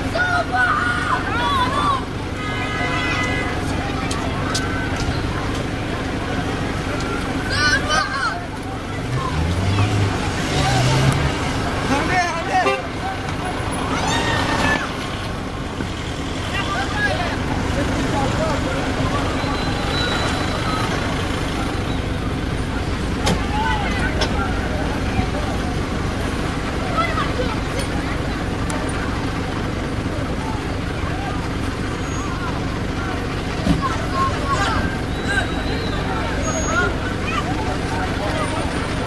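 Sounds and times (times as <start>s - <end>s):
people calling out: 0.0s - 15.6s, 16.2s - 39.0s.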